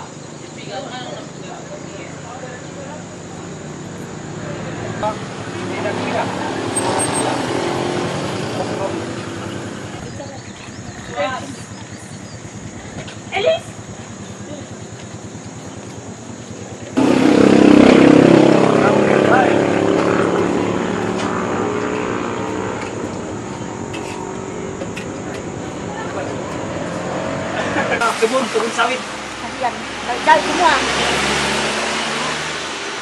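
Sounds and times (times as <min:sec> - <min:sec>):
motor vehicle engine running: 0:00.0 - 0:33.0
faint voices: 0:18.6 - 0:31.2.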